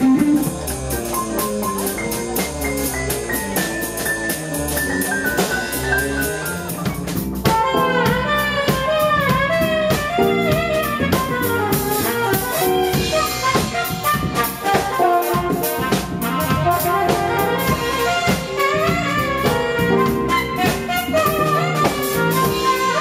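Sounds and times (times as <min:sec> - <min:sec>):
bass guitar: 0:00.0 - 0:23.0
drum kit beat: 0:00.0 - 0:23.0
keyboard: 0:00.0 - 0:23.0
saxophone melody: 0:00.0 - 0:23.0.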